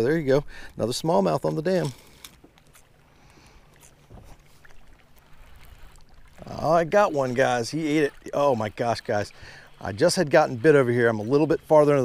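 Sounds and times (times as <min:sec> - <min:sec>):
small waves lapping against boat: 0:00.0 - 0:12.0.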